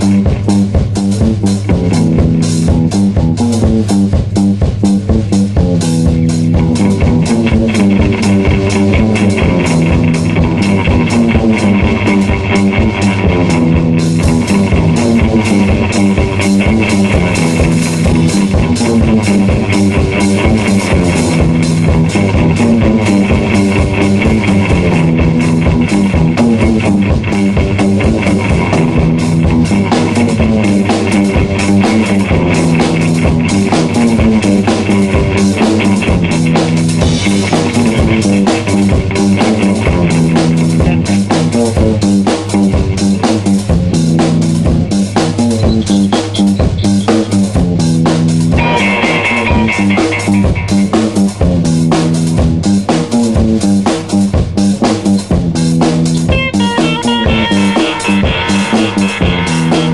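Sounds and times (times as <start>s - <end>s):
bass guitar: 0.0s - 59.9s
drum kit beat: 0.0s - 59.9s
electric guitar: 0.0s - 59.9s.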